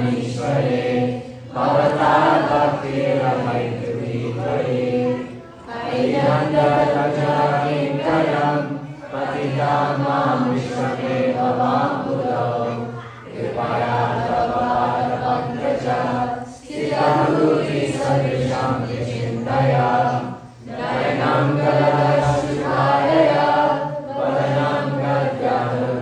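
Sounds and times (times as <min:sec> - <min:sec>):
group chanting in unison: 0:00.0 - 0:26.0.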